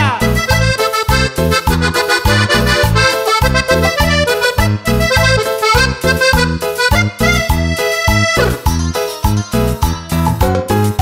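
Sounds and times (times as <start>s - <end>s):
accordion melody: 0.0s - 9.5s
bouncing bass line: 0.0s - 10.6s.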